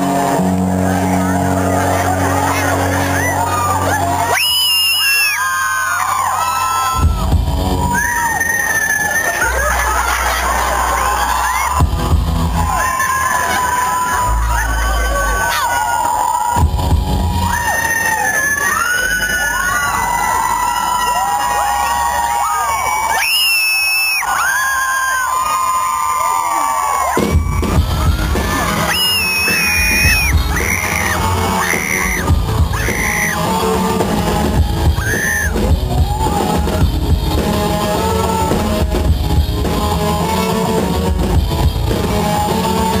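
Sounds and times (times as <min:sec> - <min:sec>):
guitar: 0:00.0 - 0:24.3, 0:27.1 - 0:43.0
crowd yelling and cheering: 0:00.0 - 0:43.0
drums and bass: 0:00.0 - 0:43.0.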